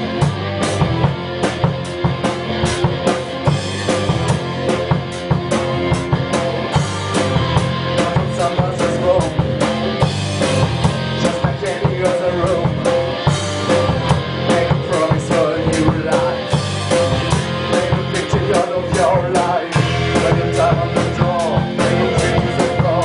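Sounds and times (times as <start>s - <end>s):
drum kit fast steady beat: 0.0s - 23.0s
rock band playing: 0.0s - 23.0s.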